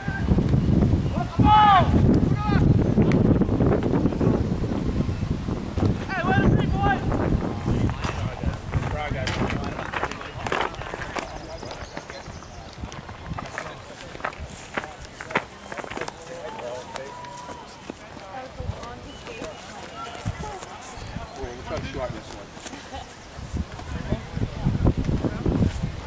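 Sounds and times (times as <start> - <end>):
voices calling out: 0.0 - 3.4, 5.9 - 26.0
wind rumbling on microphone: 0.0 - 16.0, 19.9 - 26.0.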